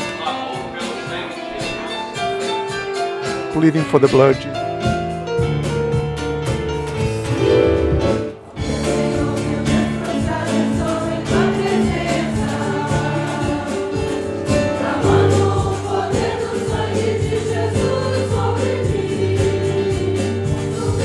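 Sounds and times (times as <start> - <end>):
church orchestra accompanying: 0.0 - 4.8, 7.4 - 21.0
many voices singing a hymn: 8.4 - 21.0.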